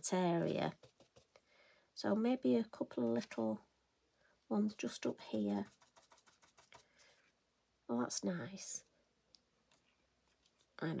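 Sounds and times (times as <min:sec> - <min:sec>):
brush tapping on paper: 0:00.7 - 0:01.4, 0:05.3 - 0:07.0.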